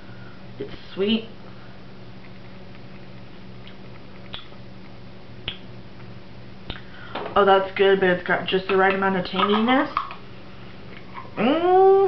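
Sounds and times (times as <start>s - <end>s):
low room hum: 0.0s - 12.0s
mouth clicks and lip smacks: 2.2s - 4.6s, 5.4s - 5.7s.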